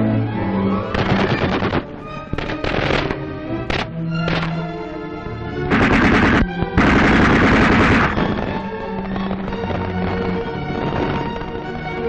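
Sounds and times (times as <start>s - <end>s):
orchestral music: 0.0s - 12.0s
machine-gun fire: 1.0s - 3.9s, 5.7s - 11.4s.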